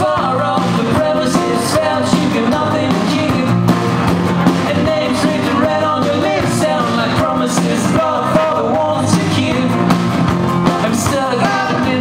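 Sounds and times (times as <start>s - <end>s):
man singing: 0.0s - 3.6s, 4.6s - 10.0s, 10.6s - 12.0s.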